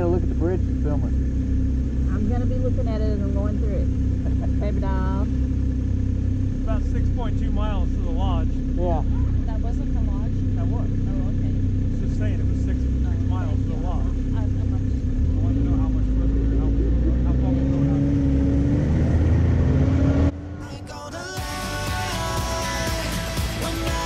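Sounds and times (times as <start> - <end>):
snowmobile engines idling: 0.0 - 18.4, 20.6 - 24.0
music: 20.6 - 24.0.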